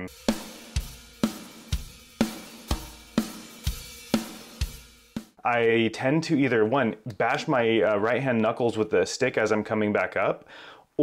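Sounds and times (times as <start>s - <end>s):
kick drum and snare beat: 0.0s - 5.4s.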